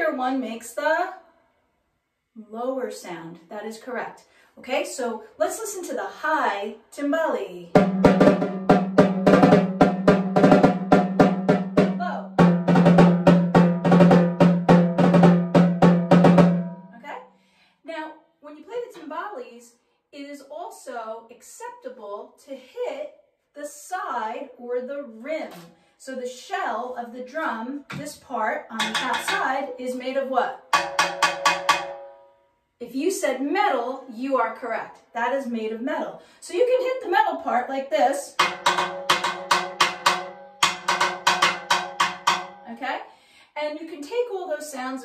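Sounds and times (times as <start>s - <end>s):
timbales struck with drumsticks: 7.8s - 16.8s, 27.9s - 30.0s, 30.7s - 32.3s, 38.4s - 42.7s
drumsticks striking metal shell: 28.8s - 29.6s, 30.7s - 32.3s, 38.4s - 42.6s.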